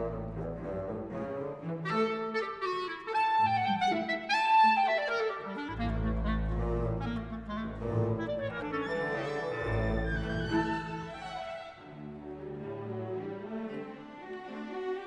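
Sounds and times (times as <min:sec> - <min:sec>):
orchestra low instruments: 0:00.0 - 0:15.0
clarinet playing runs: 0:01.8 - 0:11.8.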